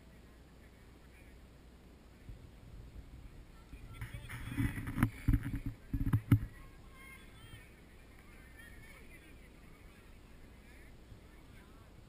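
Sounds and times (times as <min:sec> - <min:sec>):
low thumps on microphone: 0:02.3 - 0:06.6.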